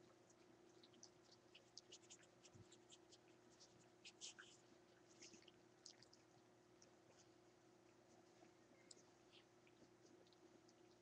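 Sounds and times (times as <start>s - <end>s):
faint steady hum: 0.0s - 11.0s
puppies suckling: 0.0s - 11.0s.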